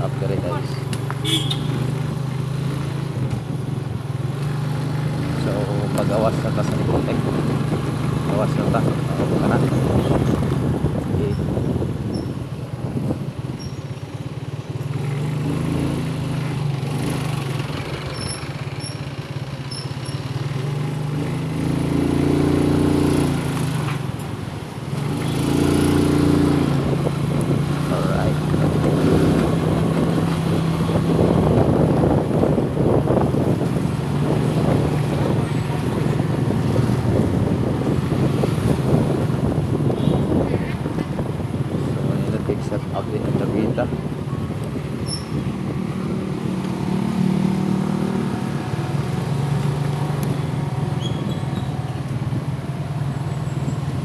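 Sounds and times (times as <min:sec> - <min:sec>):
road and traffic noise: 0:00.0 - 0:54.0.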